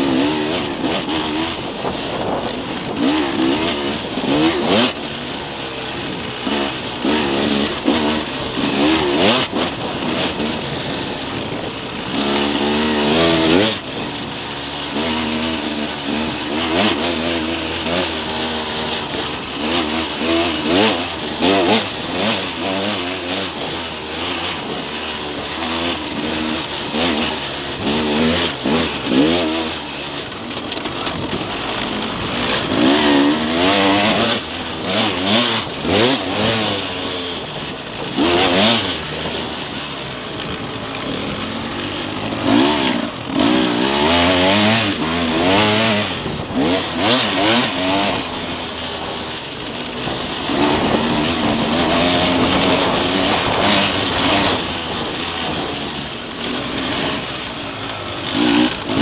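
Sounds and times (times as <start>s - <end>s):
dirt bike engine revving: 0.0s - 59.0s
wind and road noise: 0.0s - 59.0s.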